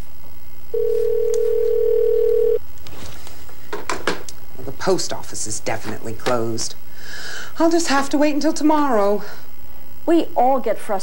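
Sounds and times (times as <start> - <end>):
telephone ringing tone: 0.7 - 2.6.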